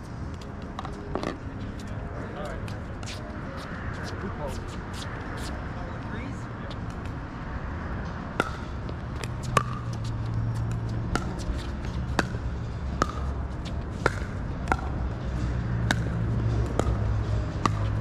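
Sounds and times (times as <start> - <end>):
steady low hum: 0.0 - 18.0
paddles hitting a plastic ball: 14.0 - 15.0, 15.9 - 18.0.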